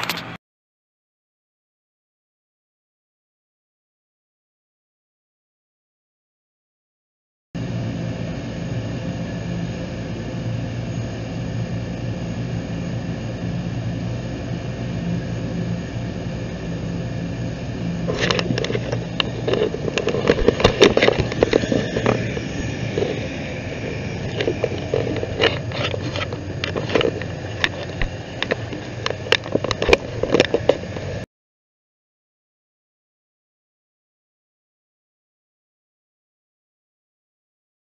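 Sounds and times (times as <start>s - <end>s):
aircraft turbine engine running: 7.6s - 31.3s.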